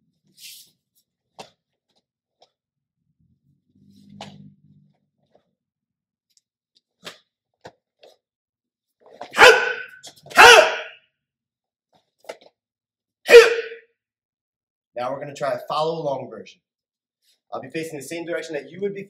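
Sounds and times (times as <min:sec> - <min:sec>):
person shouting: 0:09.4 - 0:10.9, 0:13.3 - 0:13.8.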